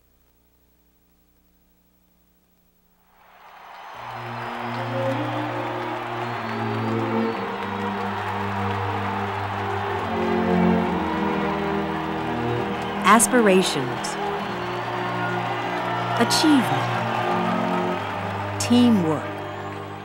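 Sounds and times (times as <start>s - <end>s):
crowd cheering and applauding: 3.1s - 20.0s.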